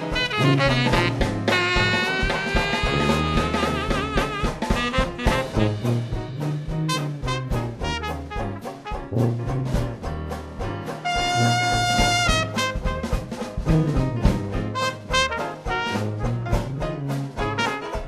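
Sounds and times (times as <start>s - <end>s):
jazz band playing: 0.0s - 18.0s
horn holding high note: 0.1s - 6.2s, 11.0s - 12.9s.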